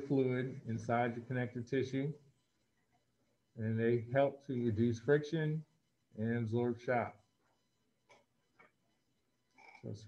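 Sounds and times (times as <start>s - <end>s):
person speaking: 0.0s - 2.3s.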